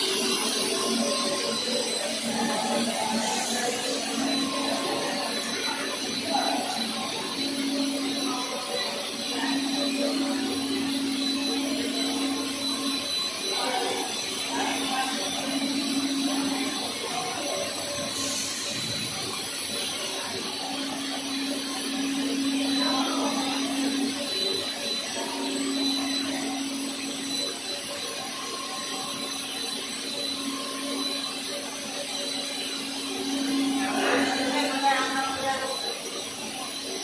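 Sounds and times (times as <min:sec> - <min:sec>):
machinery drone: 0:00.0 - 0:37.0.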